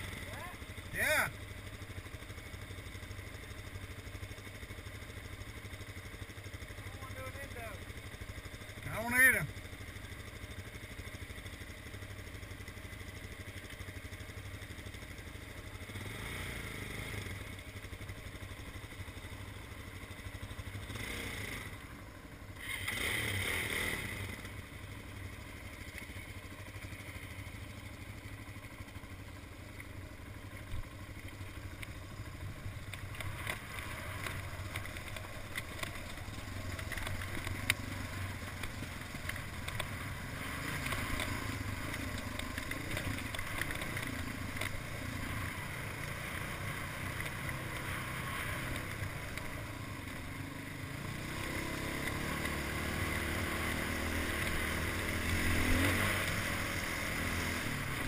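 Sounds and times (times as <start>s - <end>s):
dirt bike engines running: 0.0s - 58.0s
clatter over rocky ground: 30.6s - 47.9s.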